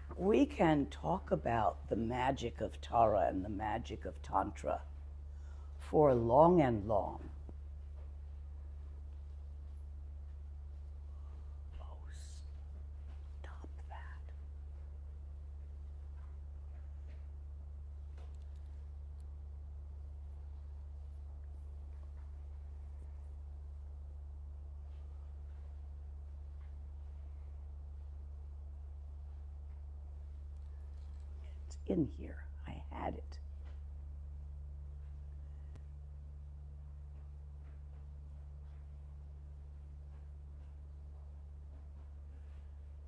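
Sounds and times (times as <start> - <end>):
steady low hum: 0.0 - 43.0
person whispering: 11.3 - 14.5.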